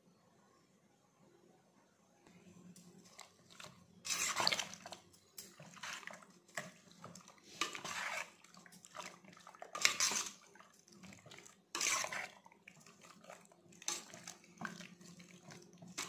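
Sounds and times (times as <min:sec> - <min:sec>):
spoon stirring wet marinade: 0:02.8 - 0:16.0.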